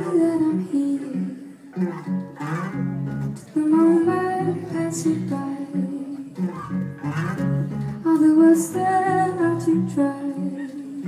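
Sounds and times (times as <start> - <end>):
acoustic guitar and band: 0.0 - 11.0.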